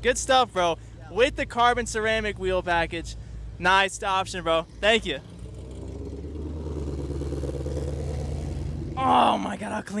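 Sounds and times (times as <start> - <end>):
car engine pulling away slowly: 4.6 - 9.2.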